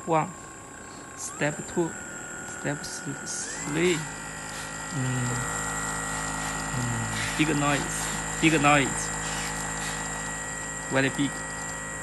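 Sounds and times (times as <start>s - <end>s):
massage gun motor whining: 0.5s - 12.0s.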